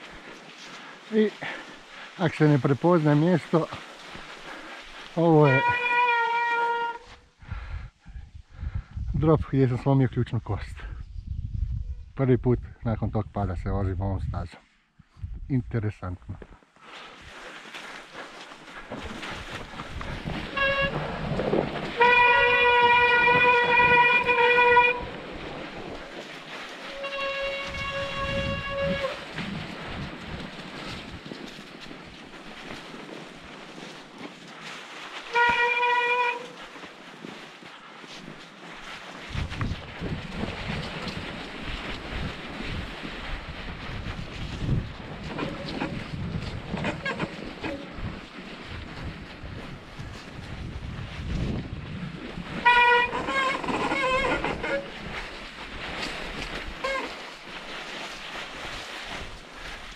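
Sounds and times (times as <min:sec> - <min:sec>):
bike rolling through slush: 0:00.0 - 0:06.9, 0:16.8 - 0:59.9
wind on microphone: 0:07.2 - 0:09.7, 0:10.4 - 0:15.5, 0:19.0 - 0:33.9, 0:39.1 - 0:59.9.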